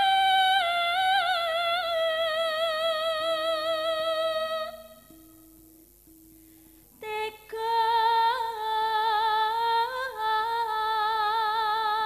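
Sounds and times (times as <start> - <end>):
woman singing a long note: 0.0 - 5.5, 7.0 - 12.0.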